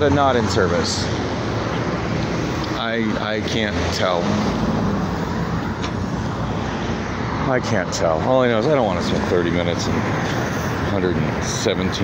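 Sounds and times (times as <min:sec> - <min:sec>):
low engine hum: 0:00.0 - 0:08.3
passing cars: 0:00.0 - 0:12.0.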